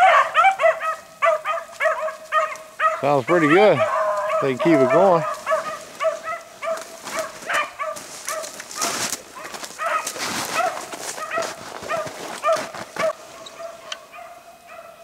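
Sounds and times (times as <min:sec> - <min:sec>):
hounds baying: 0:00.0 - 0:15.0
rustling: 0:03.9 - 0:13.8.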